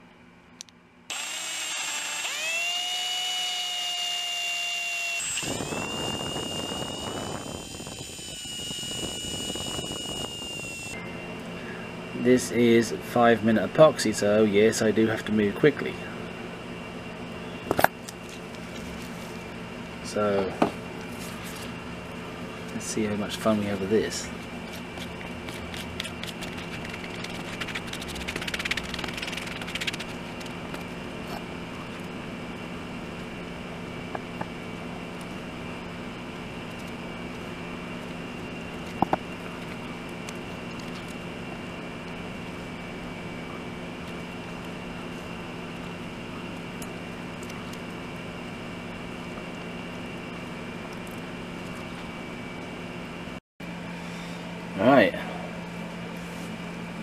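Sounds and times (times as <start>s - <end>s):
steady machine hum: 0.0s - 57.0s
stir stick scraping on cardboard: 24.6s - 30.7s.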